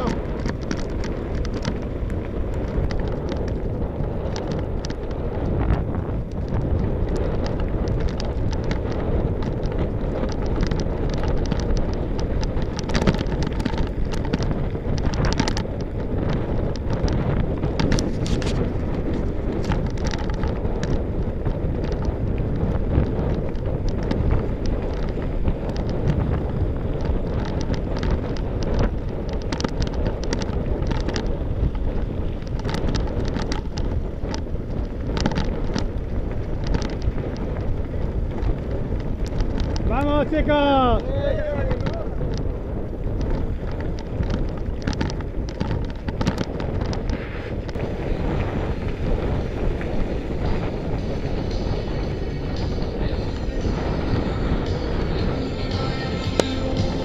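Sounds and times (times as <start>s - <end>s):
bike rattles and clicks: 0.0s - 57.0s
bike tyres rumbling on gravel: 0.0s - 57.0s
wind buffeting microphone: 0.0s - 57.0s.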